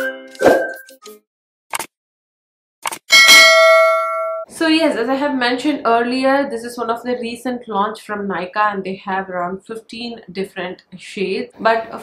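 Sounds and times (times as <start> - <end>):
short clicks: 1.0 - 1.9
bright bell ding: 3.1 - 4.5.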